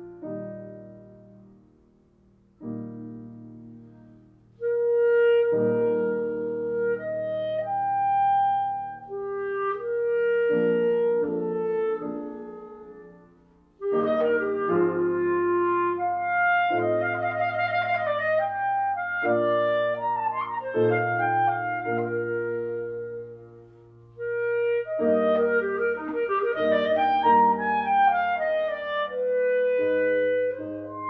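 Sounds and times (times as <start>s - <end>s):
piano chords: 0.0s - 31.0s
clarinet: 2.6s - 31.0s.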